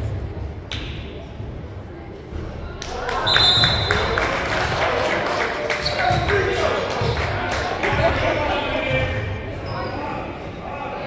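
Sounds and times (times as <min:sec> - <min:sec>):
voices in a gym: 0:00.0 - 0:11.0.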